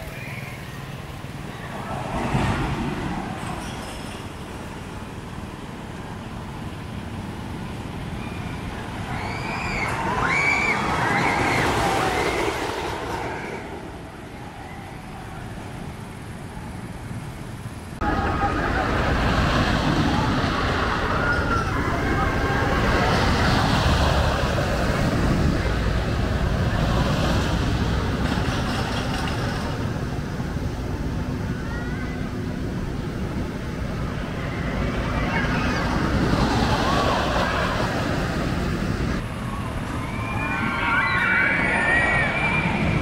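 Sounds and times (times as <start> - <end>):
roller coaster rumbling on wooden track: 0.0 - 43.0.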